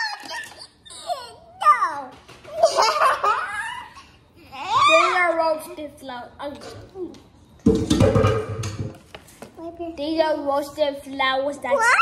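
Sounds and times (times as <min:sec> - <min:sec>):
children laughing: 0:00.0 - 0:01.7, 0:02.4 - 0:05.2.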